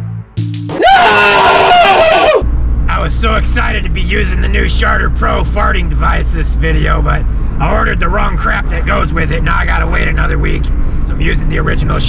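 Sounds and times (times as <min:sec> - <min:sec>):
man yelling: 0:00.8 - 0:02.4
road rumble inside moving car: 0:02.4 - 0:12.0.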